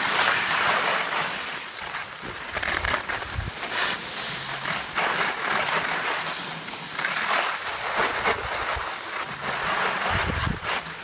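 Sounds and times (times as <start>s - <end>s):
skis scraping over snow: 0.0s - 11.0s.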